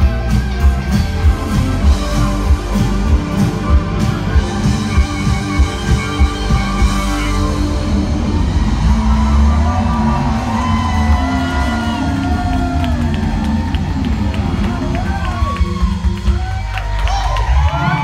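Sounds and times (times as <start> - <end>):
crowd cheering and whooping: 0.0 - 18.0
live rock band playing: 0.0 - 18.0.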